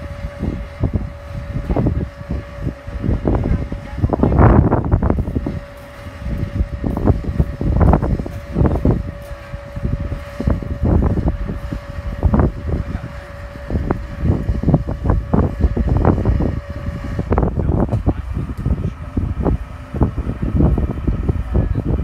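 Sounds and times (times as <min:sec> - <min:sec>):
distant propeller plane drone: 0:00.0 - 0:22.0
wind buffeting microphone: 0:00.0 - 0:22.0.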